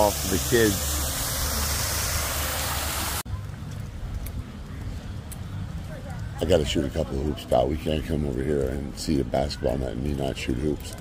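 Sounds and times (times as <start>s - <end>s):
waterfall splashing into pool: 0.0s - 3.2s.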